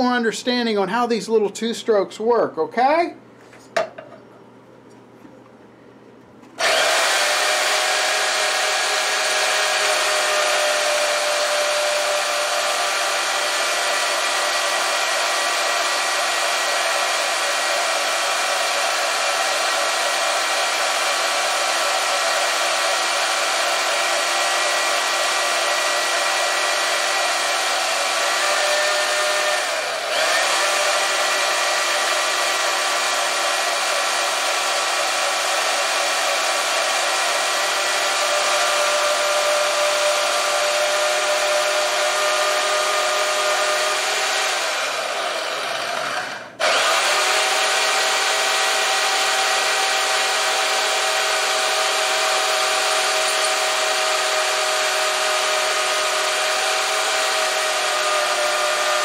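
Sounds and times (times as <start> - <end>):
band saw cutting metal: 6.6 - 59.0.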